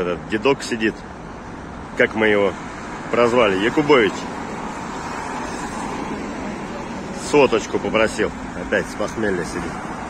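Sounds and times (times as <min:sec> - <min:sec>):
cars passing: 0:00.0 - 0:10.0.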